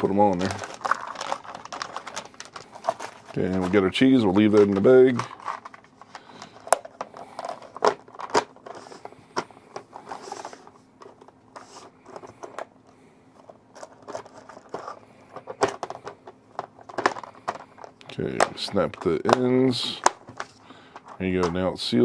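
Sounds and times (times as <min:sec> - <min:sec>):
rustling: 0:00.2 - 0:09.1.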